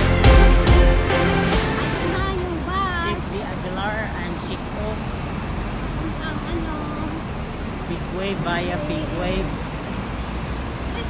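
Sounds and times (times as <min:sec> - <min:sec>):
bus diesel engine: 0:00.0 - 0:11.0
low rumble of road traffic: 0:01.1 - 0:11.0
faint voices: 0:05.8 - 0:09.8.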